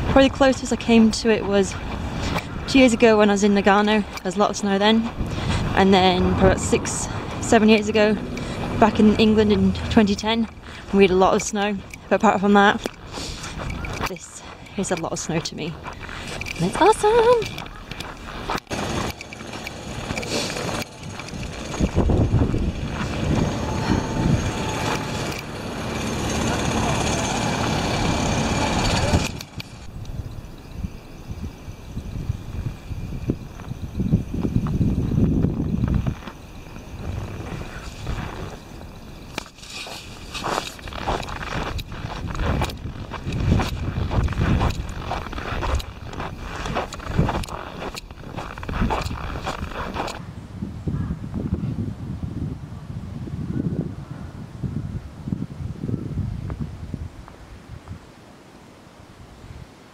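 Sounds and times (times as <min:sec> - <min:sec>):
wind on microphone: 0:00.0 - 0:26.2, 0:27.4 - 0:58.2
footsteps crunching in snow: 0:07.0 - 0:25.9, 0:35.5 - 0:50.2.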